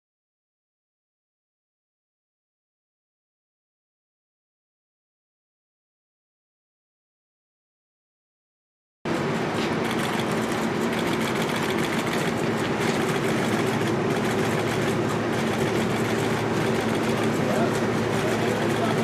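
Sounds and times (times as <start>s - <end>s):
engine hum: 9.1s - 19.0s.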